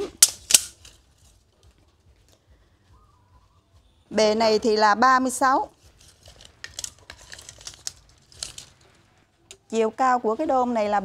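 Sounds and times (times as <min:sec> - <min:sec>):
tape measure clicks: 0:00.2 - 0:01.0.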